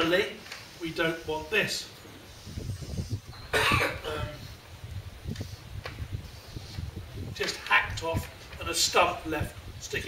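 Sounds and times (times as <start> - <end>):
man coughing: 3.5 - 4.4.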